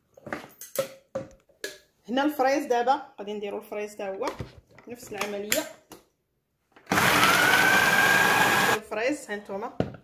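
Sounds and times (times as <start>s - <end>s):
food processor motor whine: 6.9s - 8.8s.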